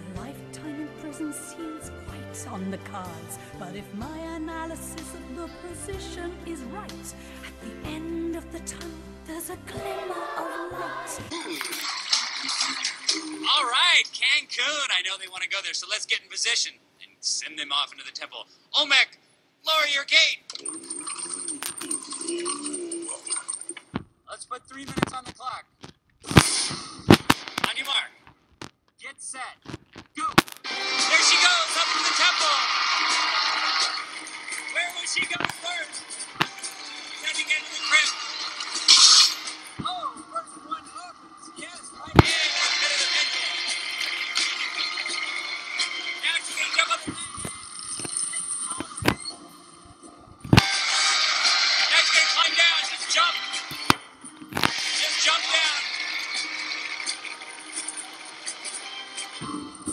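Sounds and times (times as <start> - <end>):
background music: 0.0 - 13.8, 30.4 - 59.9
people shouting and cheering: 30.8 - 34.1.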